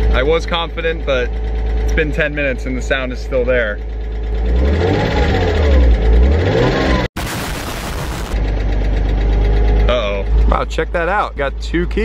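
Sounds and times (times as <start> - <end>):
engine tapping noise: 0.0 - 7.0, 8.2 - 12.0
car engine revving and idling: 0.0 - 12.0.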